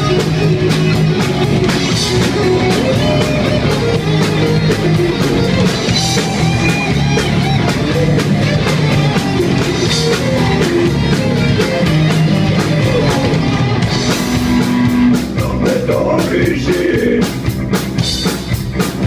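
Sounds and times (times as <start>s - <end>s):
bass guitar: 0.0s - 19.0s
drum kit: 0.0s - 19.0s
electric guitar: 0.0s - 19.0s.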